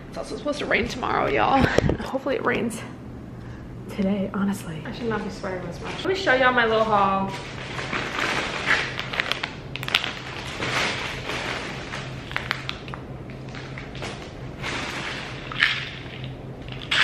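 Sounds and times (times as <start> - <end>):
packaging crinkling and rustling: 5.9 - 17.0.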